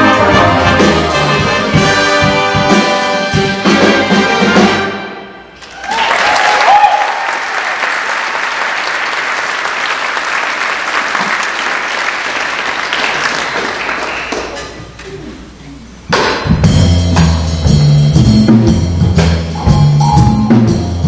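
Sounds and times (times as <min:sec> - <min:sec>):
big band music: 0:00.0 - 0:05.7, 0:13.6 - 0:21.0
audience applauding: 0:05.6 - 0:14.8.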